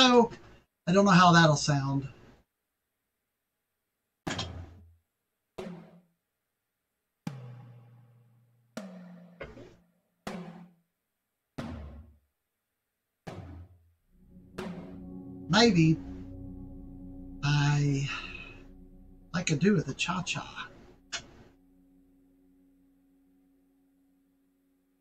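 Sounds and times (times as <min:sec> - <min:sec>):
tom drum hits: 0:14.2 - 0:21.5.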